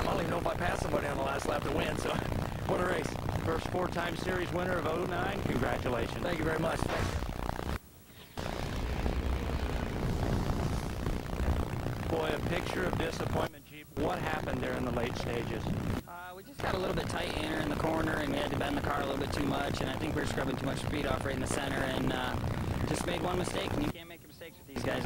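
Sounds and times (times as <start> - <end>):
man talking: 0.0 - 7.0, 12.1 - 15.7, 16.4 - 25.0.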